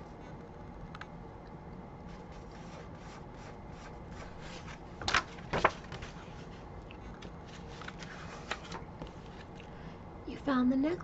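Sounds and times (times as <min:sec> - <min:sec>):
hands rustling on book pages: 0:02.0 - 0:09.7.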